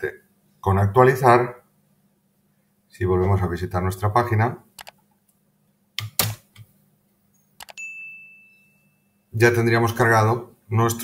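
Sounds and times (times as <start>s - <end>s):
bell ding: 7.7s - 10.2s.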